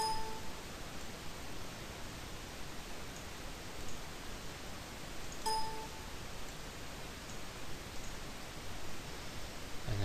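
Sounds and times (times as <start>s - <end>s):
short ping of clear tones: 0.0s - 0.5s, 5.5s - 6.0s
steady background hiss: 0.0s - 10.0s.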